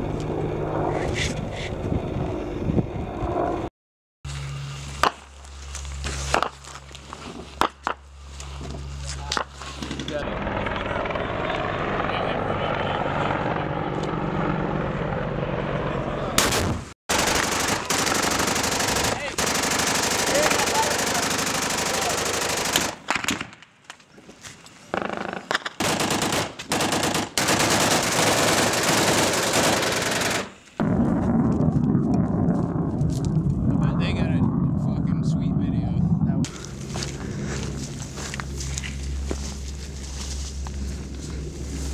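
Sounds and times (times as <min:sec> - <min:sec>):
automatic gunfire: 0:16.4 - 0:23.5, 0:25.0 - 0:30.6.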